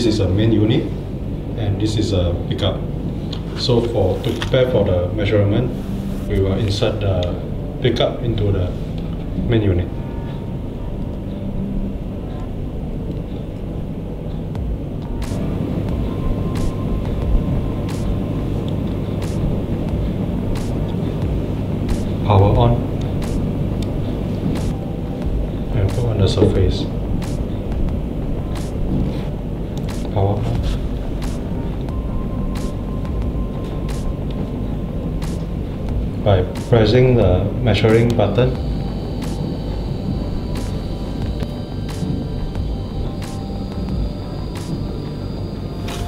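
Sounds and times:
person speaking: 3.5s - 8.8s, 25.7s - 27.0s
tester drive unit running: 29.4s - 46.0s.

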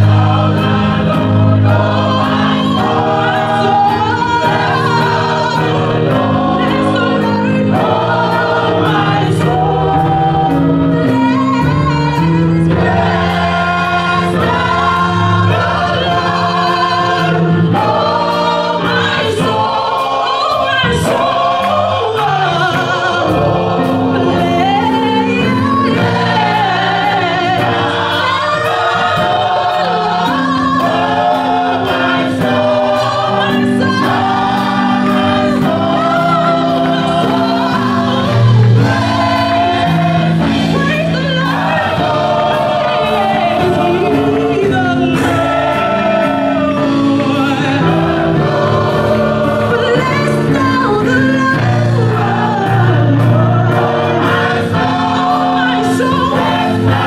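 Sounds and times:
gospel choir singing: 0.0s - 57.0s
lead singer on microphone: 0.0s - 57.0s
steady percussive beat: 0.0s - 57.0s.

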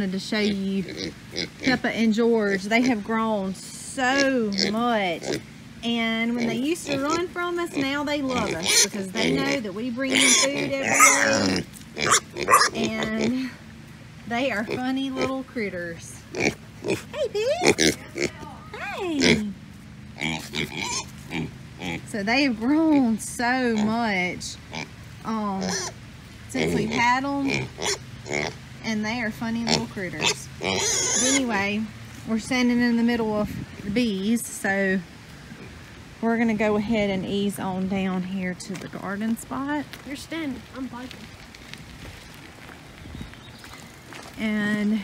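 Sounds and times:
pigs grunting: 0.4s - 3.3s, 4.0s - 5.6s, 6.2s - 13.6s, 14.4s - 18.4s, 19.1s - 19.6s, 20.2s - 28.6s, 29.5s - 31.7s
footsteps on gravel: 38.6s - 45.0s.

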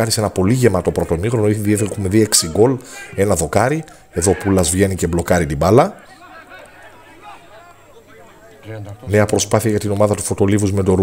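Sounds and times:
distant indistinct voices: 0.0s - 10.4s.

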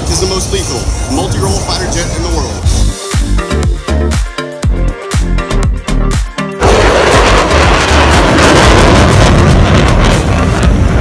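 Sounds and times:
music over loudspeakers: 1.2s - 11.0s
jet fighter flying past: 6.6s - 11.0s.

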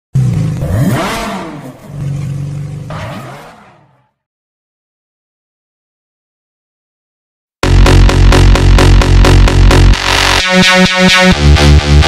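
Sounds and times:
car engine revving: 0.2s - 4.1s.

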